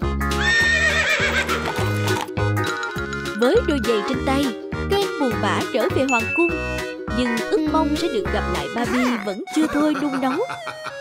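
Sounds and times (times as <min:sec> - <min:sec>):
horse whinnying: 0:00.3 - 0:02.0
children's music with steady beat: 0:01.7 - 0:11.0.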